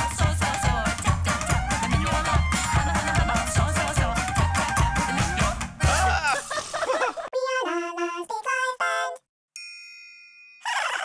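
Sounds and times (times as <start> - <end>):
bright bell-like ding: 9.6 - 10.6
cartoon bird chirping: 10.6 - 11.0.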